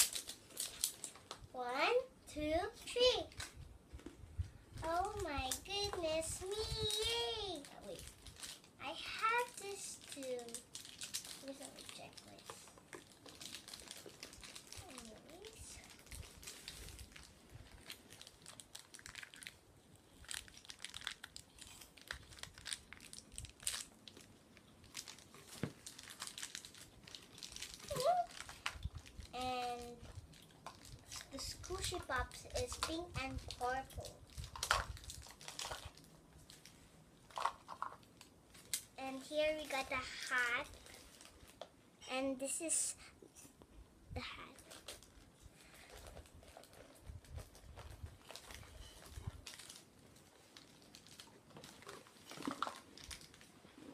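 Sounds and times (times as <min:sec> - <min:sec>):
plastic wrapping crinkling: 0:00.0 - 0:01.7, 0:03.0 - 0:41.8, 0:44.4 - 0:53.9
girl's voice: 0:01.5 - 0:03.4, 0:04.8 - 0:08.1, 0:08.8 - 0:10.6, 0:11.4 - 0:12.7, 0:14.8 - 0:16.0, 0:27.9 - 0:28.4, 0:29.3 - 0:30.1, 0:31.2 - 0:34.3, 0:39.0 - 0:40.8, 0:42.0 - 0:43.2, 0:44.1 - 0:44.7.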